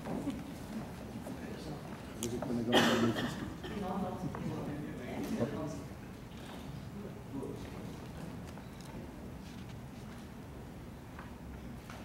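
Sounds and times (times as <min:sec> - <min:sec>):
footsteps on wooden stage floor: 0:00.0 - 0:02.5
low hum of large hall: 0:00.0 - 0:12.0.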